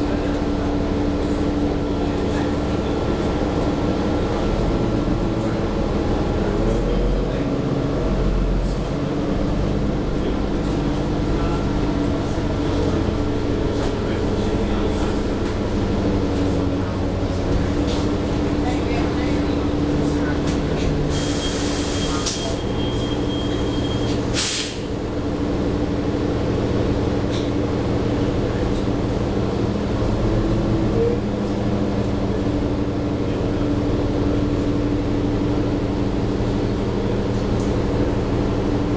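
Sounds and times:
bus engine hum: 0.0s - 38.9s
road noise: 0.0s - 38.9s
compressed air hissing: 24.4s - 24.9s.

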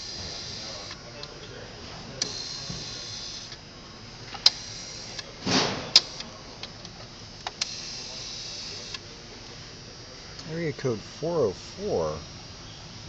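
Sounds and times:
rotary dial whirring back: 0.0s - 1.0s, 2.2s - 3.6s, 4.2s - 9.0s.

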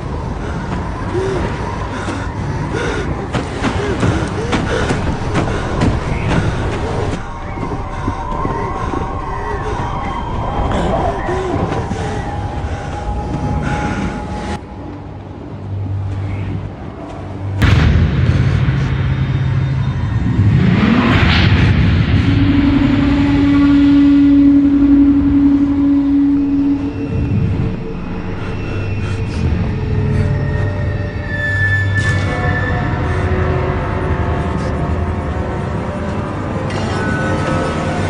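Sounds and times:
wind-like noise: 0.0s - 31.4s
ominous music: 0.0s - 38.0s
sudden boom: 17.6s - 27.6s
long low note: 17.6s - 31.2s.

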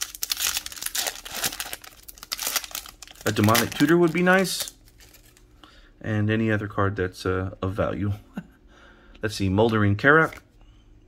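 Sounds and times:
foil wrapper crinkling and tearing: 0.0s - 5.5s.

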